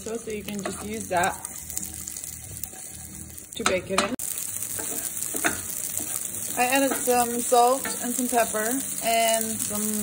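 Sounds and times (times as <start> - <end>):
meat sizzling in a frying pan: 0.0 - 10.0
wooden spoon stirring: 0.4 - 4.0, 4.6 - 7.2.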